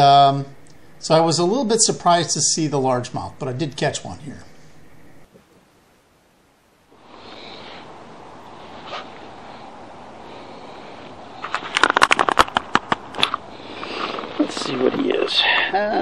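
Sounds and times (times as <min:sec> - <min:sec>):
steady outdoor hiss: 0:00.0 - 0:16.0
fish slapping and gear clicks: 0:11.5 - 0:13.4.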